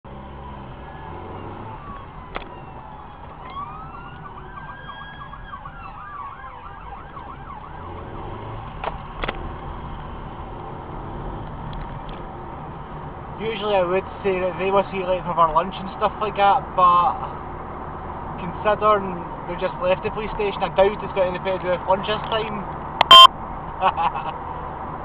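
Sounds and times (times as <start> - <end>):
car engine and road drone: 0.0 - 25.0
emergency vehicle siren: 0.1 - 9.2, 23.0 - 23.3.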